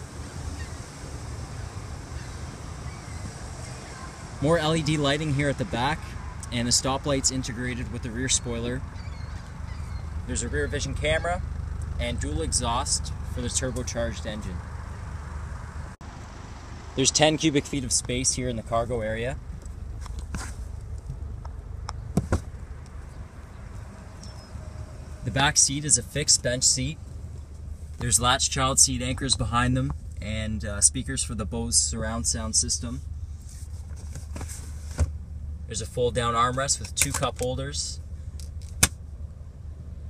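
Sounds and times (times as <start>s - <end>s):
car engine idling: 0.0s - 40.0s
steady low rumble: 0.0s - 40.0s.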